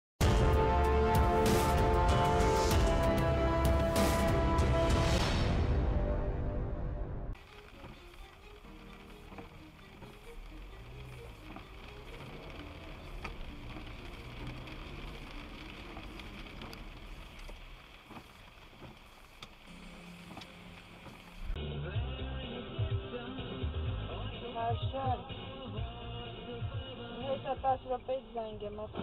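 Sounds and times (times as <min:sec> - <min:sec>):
music: 0:00.2 - 0:14.8, 0:19.7 - 0:29.0
moving car rumble: 0:00.2 - 0:29.0.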